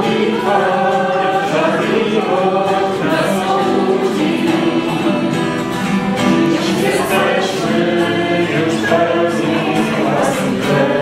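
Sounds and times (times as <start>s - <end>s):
group singing religious song: 0.0s - 11.0s
strummed acoustic guitar: 0.0s - 11.0s.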